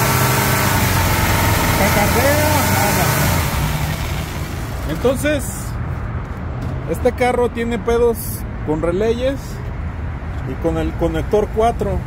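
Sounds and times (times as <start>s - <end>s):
car engine idling rough: 0.0s - 5.4s.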